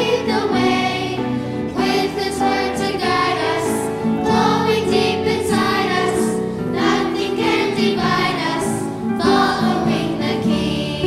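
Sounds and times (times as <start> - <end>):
choir and congregation singing: 0.0 - 11.0.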